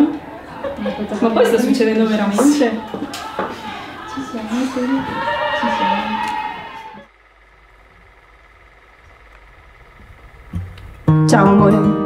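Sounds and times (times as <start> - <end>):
woman's drawn out voice: 3.8 - 6.3.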